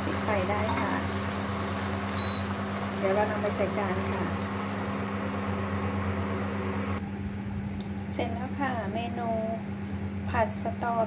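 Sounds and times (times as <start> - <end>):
woman's voice: 0.0 - 1.1, 3.0 - 4.4, 8.1 - 9.7, 10.3 - 11.0
electrical hum of cooktop: 0.0 - 11.0.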